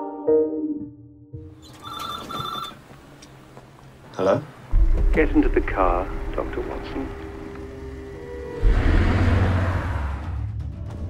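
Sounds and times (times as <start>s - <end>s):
payphone double ring: 1.6s - 2.8s.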